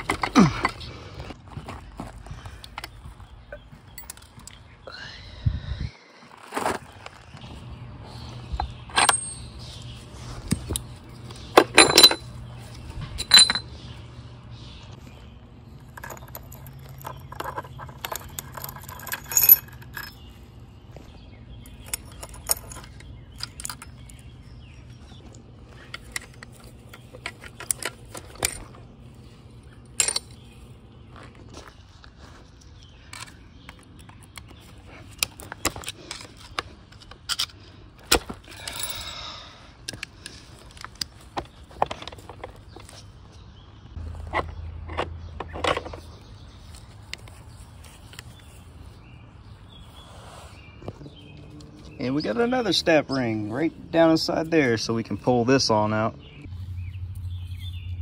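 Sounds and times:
metal parts clinking and rattling: 0:00.0 - 0:00.9, 0:08.6 - 0:09.8, 0:10.5 - 0:13.9, 0:15.8 - 0:20.5, 0:21.6 - 0:24.6, 0:25.2 - 0:31.3, 0:33.1 - 0:39.2, 0:39.8 - 0:43.2.

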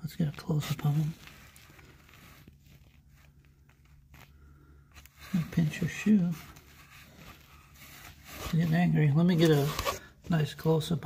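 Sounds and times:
low steady hum: 0:00.0 - 0:11.0
phone handling rustle: 0:05.0 - 0:10.1.

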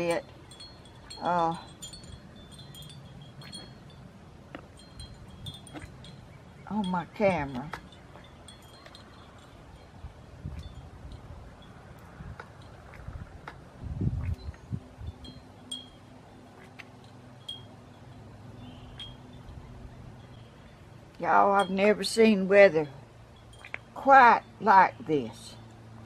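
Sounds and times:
wind chimes tinkling: 0:00.0 - 0:12.9, 0:14.4 - 0:26.0.

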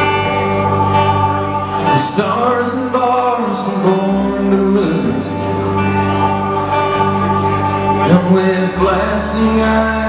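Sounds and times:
electric guitar: 0:00.0 - 0:10.0
man singing: 0:01.8 - 0:06.0, 0:07.9 - 0:10.0.

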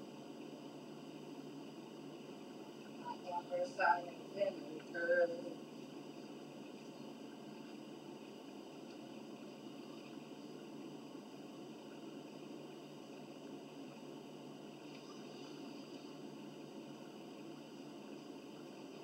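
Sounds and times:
room hum and hiss: 0:00.0 - 0:19.0.

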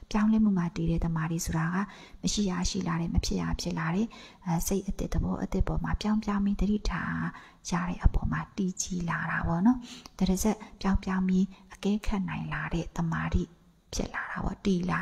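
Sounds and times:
woman talking: 0:00.0 - 0:15.0.

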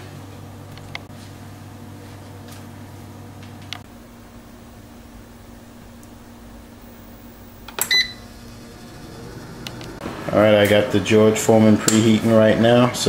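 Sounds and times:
low steady hum: 0:00.0 - 0:13.0
short electronic beep: 0:07.8 - 0:08.2.

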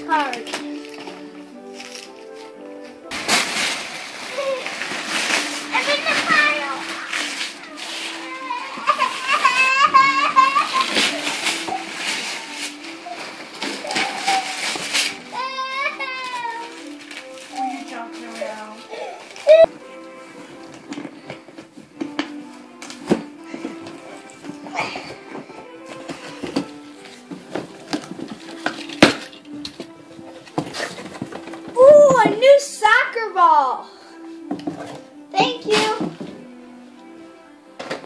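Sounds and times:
child's voice: 0:00.0 - 0:00.6, 0:05.7 - 0:07.3, 0:08.1 - 0:10.5, 0:15.3 - 0:16.8, 0:17.5 - 0:19.7, 0:31.8 - 0:33.9, 0:35.3 - 0:36.1
wrapping paper rustling: 0:00.0 - 0:32.6
background music: 0:00.0 - 0:38.0.

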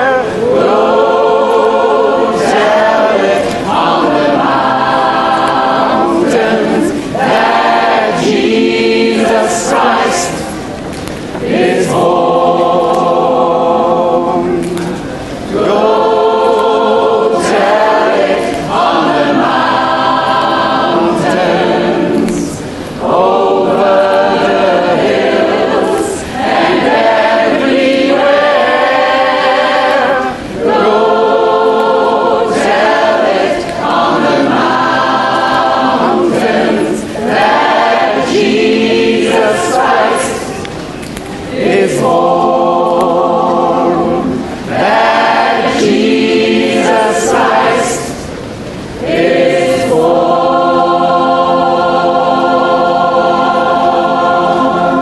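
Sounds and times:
choir singing a cappella: 0:00.0 - 0:55.0.

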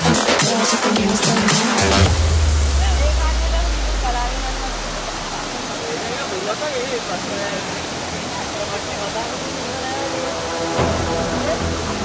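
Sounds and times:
waterfall rushing over rock: 0:00.0 - 0:12.0.

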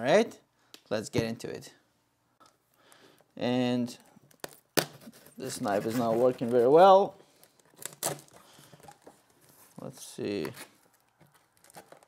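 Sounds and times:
tape ripping: 0:07.5 - 0:08.4.

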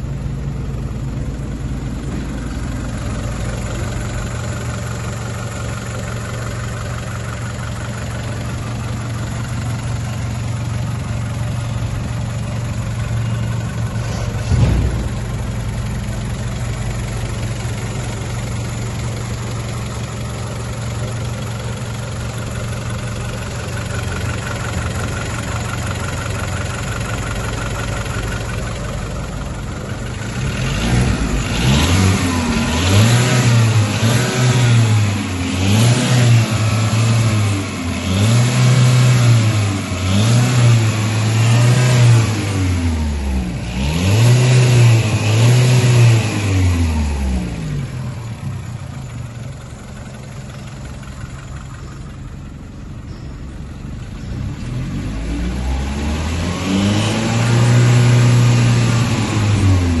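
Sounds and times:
car engine revving and idling: 0:00.0 - 1:00.0.

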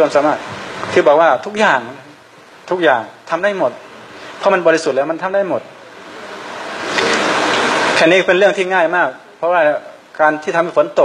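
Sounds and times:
rain hissing: 0:05.7 - 0:08.7.

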